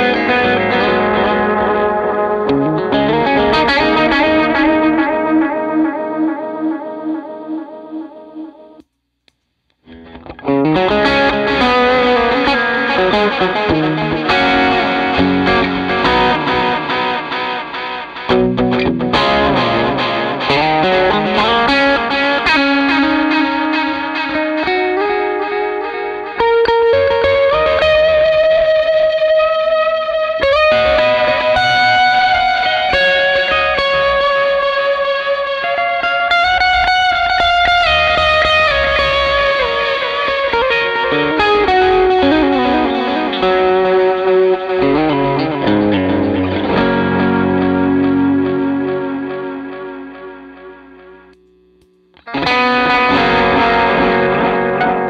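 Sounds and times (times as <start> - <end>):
electric guitar with echo delay: 0.0 - 8.8, 9.9 - 55.0.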